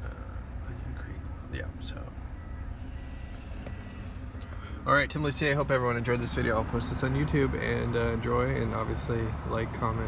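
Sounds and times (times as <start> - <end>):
road and tyre noise in cabin: 0.0 - 10.0.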